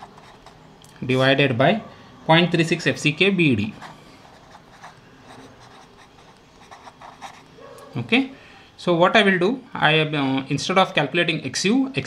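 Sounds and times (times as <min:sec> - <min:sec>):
pen writing on paper: 0:00.0 - 0:00.6, 0:03.8 - 0:07.5.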